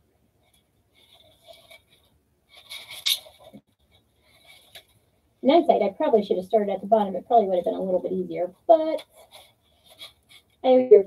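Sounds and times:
mesh ribbon rustling and scraping: 0.4 - 5.1, 8.5 - 10.7.

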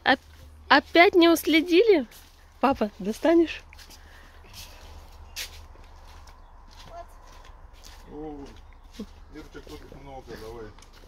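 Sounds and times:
rustling garden plants: 0.0 - 11.0
soft footsteps: 0.0 - 11.0.

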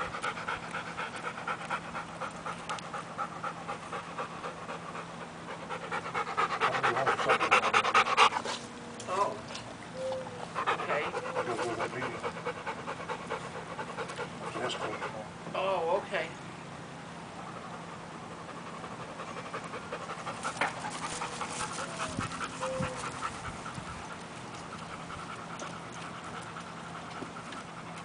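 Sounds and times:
dog panting: 0.0 - 8.7, 10.3 - 15.3, 17.4 - 28.0.

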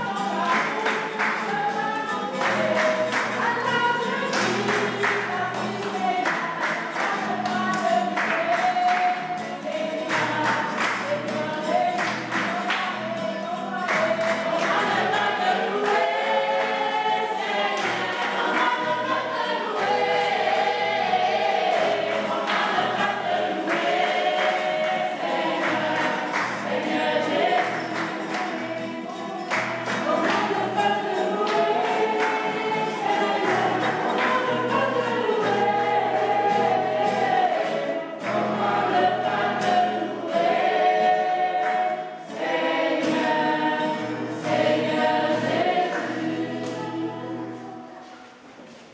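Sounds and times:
choir singing gospel: 0.0 - 48.9.

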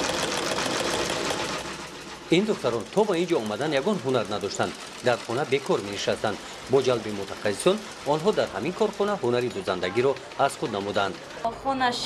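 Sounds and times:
sewing machine stitching: 0.0 - 11.5.

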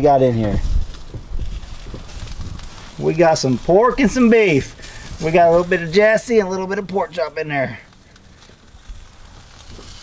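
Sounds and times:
wind buffeting microphone: 0.0 - 5.9.

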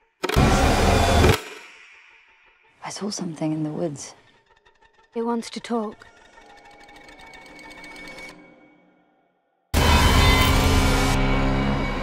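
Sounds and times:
held tones drone: 9.8 - 12.0.

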